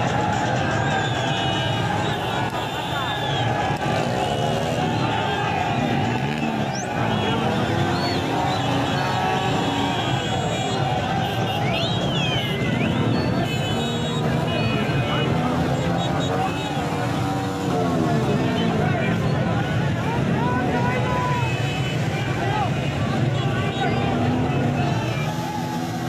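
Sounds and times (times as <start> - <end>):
crowd voices shouting: 0.0 - 26.0
vehicle engines running: 0.0 - 26.0.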